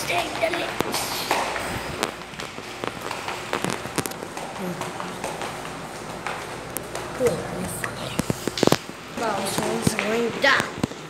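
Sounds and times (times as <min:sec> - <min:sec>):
footsteps on hard floor: 0:00.1 - 0:07.3.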